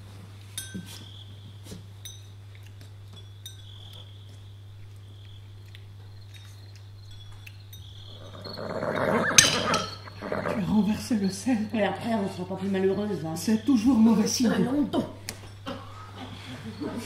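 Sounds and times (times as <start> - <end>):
tableware clinking: 0.6 - 1.0, 9.2 - 10.2
horse neighing: 8.2 - 11.0.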